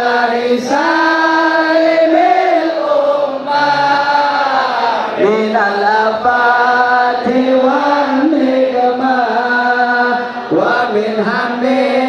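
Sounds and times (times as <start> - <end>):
men chanting a devotional song: 0.0 - 12.0.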